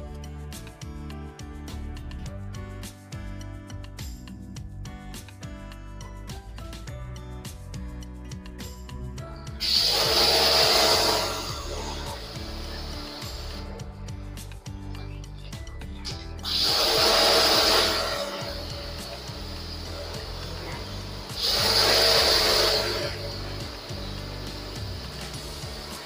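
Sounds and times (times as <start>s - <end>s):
high-pressure water spray: 9.6s - 13.8s, 16.4s - 26.0s
pump humming: 9.6s - 13.8s, 16.4s - 26.0s.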